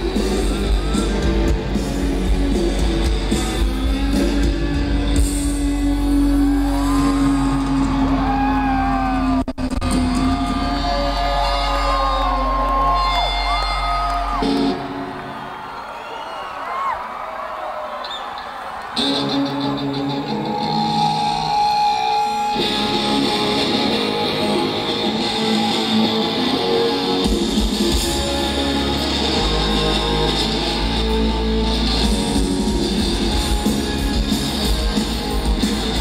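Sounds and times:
live rock band: 0:00.0 - 0:15.4, 0:18.9 - 0:36.0
loud electric guitars: 0:00.0 - 0:15.8, 0:18.0 - 0:36.0
crowd cheering and whistling: 0:00.0 - 0:36.0.

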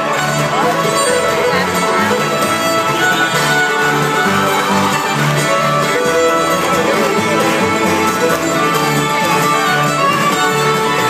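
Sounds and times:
acoustic guitar: 0:00.0 - 0:11.0
fiddle: 0:00.0 - 0:11.0
upright bass: 0:00.0 - 0:11.0.

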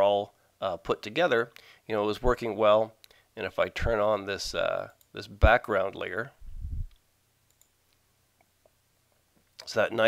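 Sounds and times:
soft clicks: 0:06.8 - 0:08.8.

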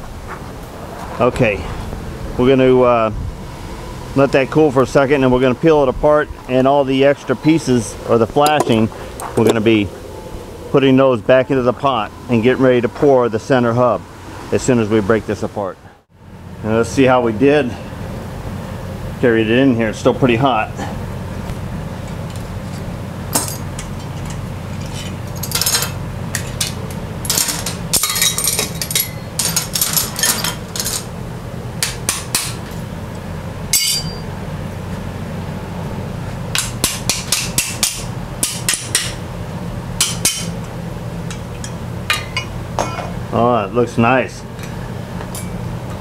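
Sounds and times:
low shop hum: 0:00.0 - 0:46.0
metal clamps clinking and clanking: 0:23.3 - 0:31.1, 0:33.7 - 0:34.2, 0:41.3 - 0:43.2, 0:45.3 - 0:45.6.

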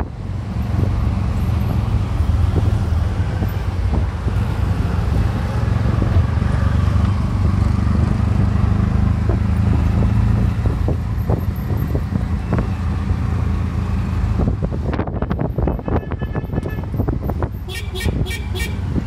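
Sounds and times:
auto rickshaw engine running: 0:00.0 - 0:19.0
road and wind noise: 0:00.0 - 0:19.0.

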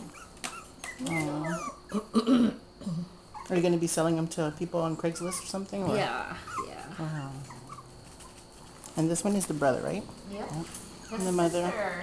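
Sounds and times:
puppies whimpering and yipping: 0:00.0 - 0:02.1, 0:03.3 - 0:03.6, 0:05.0 - 0:05.7, 0:06.4 - 0:08.4, 0:11.0 - 0:12.0
woman cooing: 0:01.0 - 0:02.2
puppies scuffling: 0:06.4 - 0:12.0.

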